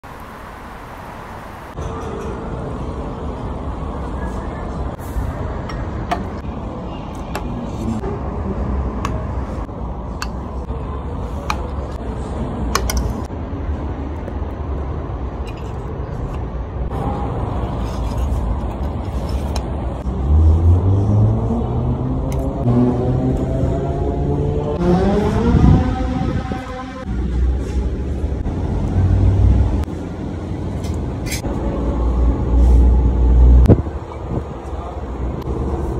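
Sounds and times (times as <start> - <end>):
rising engine-like note: 20.1 - 27.5.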